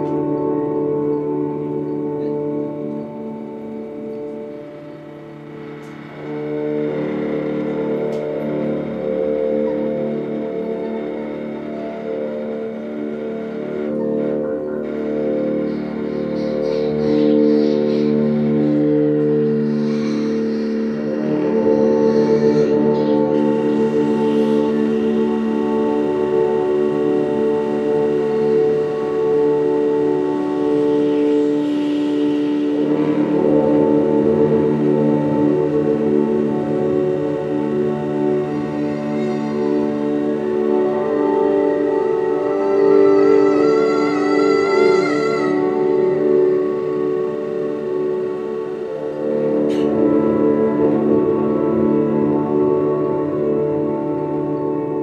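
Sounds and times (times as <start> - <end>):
electronic drone music: 0.0 - 55.0.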